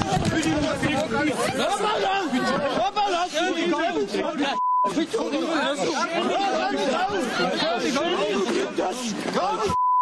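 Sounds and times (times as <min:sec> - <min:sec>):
men talking and shouting: 0:00.0 - 0:09.8.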